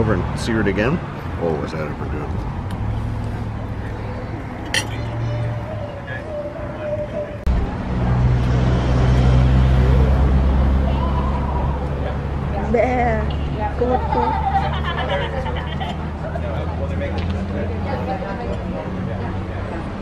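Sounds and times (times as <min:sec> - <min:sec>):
vehicle engine rumbling: 0:00.0 - 0:20.0.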